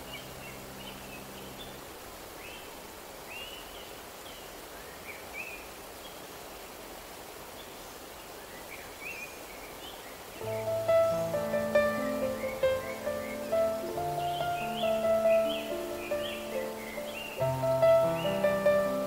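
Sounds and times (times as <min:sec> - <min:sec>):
running water: 0:00.0 - 0:19.0
birds chirping: 0:08.4 - 0:19.0
music: 0:10.4 - 0:19.0.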